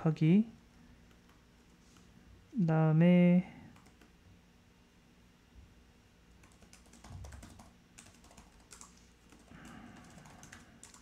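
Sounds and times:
computer keyboard typing: 3.7 - 4.1, 6.4 - 11.0.

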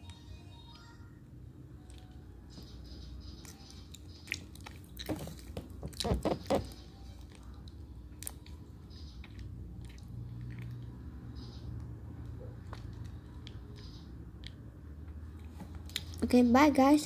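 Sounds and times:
person chewing and sucking: 3.4 - 11.0.

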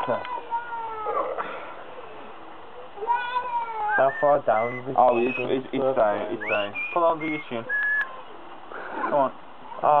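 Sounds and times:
high-pitched vocal cry: 0.0 - 1.4, 3.0 - 4.8.

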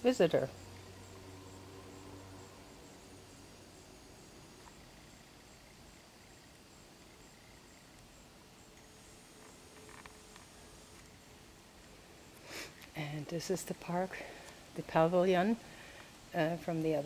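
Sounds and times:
faint outdoor ambience: 0.0 - 17.0
high insect chirp: 0.0 - 17.0.

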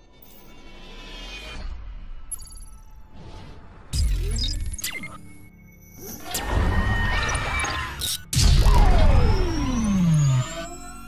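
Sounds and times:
deep boom with falling electronic tone: 8.4 - 10.7.

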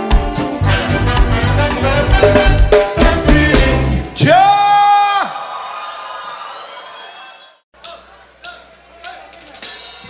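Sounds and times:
live song: 0.0 - 4.6.

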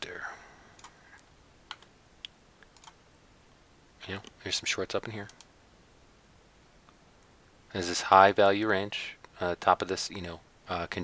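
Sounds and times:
computer keys and mouse clicks: 0.8 - 3.0.

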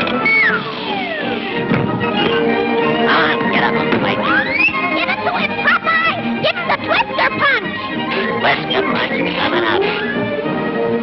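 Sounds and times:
orchestral cartoon music: 0.0 - 11.0.

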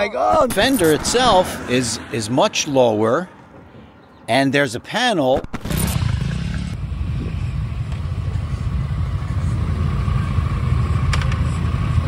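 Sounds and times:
motorcycle engine running steadily: 6.0 - 12.0.

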